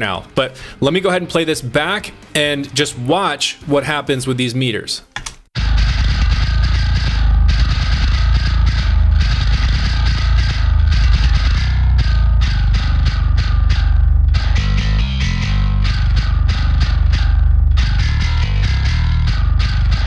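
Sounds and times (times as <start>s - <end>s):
distorted bass guitar riff: 5.6s - 20.0s.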